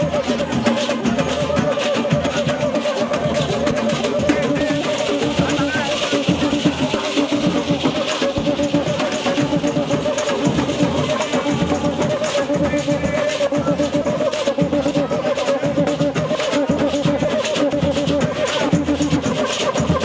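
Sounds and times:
dense drum rhythm: 0.0s - 20.0s
men singing: 1.4s - 7.4s.

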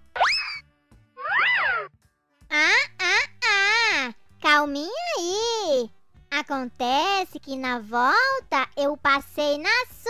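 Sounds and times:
cartoon upward pitch glide: 0.2s - 0.6s, 1.2s - 1.9s
springy cartoon tone: 1.2s - 1.9s.

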